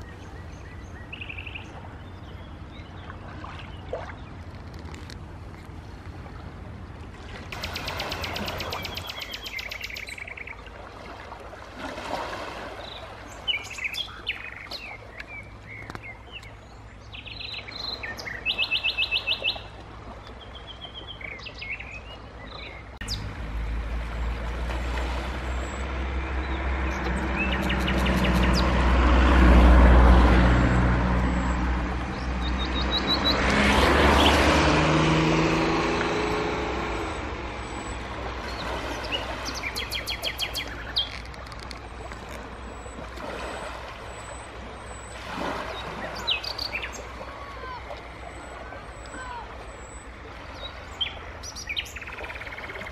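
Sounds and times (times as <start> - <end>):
low engine rumble: 0.0 - 11.7, 12.6 - 52.9
small birds chirping: 7.5 - 10.8, 12.8 - 19.7, 25.5 - 28.7, 36.8 - 41.4, 45.7 - 47.8, 50.6 - 52.9
bird trill: 7.6 - 10.6.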